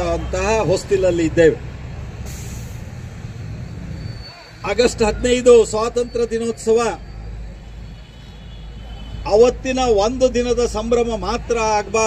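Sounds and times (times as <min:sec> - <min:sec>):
man speaking through microphone: 0:00.0 - 0:01.6, 0:04.6 - 0:07.0, 0:09.2 - 0:12.0
street traffic rumble: 0:00.0 - 0:12.0.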